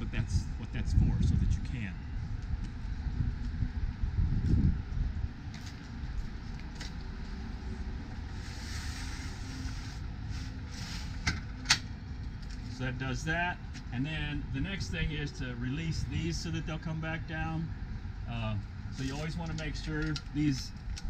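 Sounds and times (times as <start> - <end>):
low wind rumble: 0.0 - 21.0
metal arm sliding scrape: 8.4 - 11.3.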